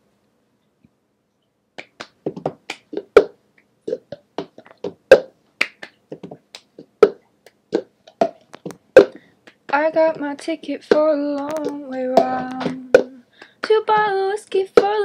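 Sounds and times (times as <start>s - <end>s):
hand claps: 1.8s - 3.4s, 4.4s - 10.0s
hand taps: 1.8s - 3.4s, 4.1s - 10.2s.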